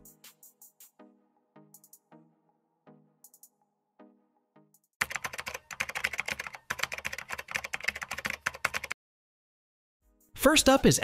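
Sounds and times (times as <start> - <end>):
keyboard typing clicks: 5.0 - 9.0.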